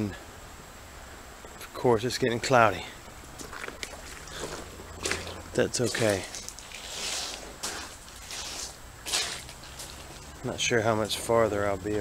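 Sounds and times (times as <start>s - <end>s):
branches rustling: 2.6s - 12.0s
footsteps in mud: 3.2s - 10.4s.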